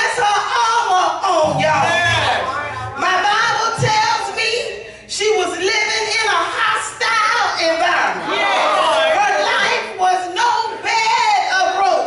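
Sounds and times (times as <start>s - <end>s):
woman preaching into microphone: 0.0s - 8.2s, 9.2s - 12.0s
low held musical note: 1.4s - 3.6s.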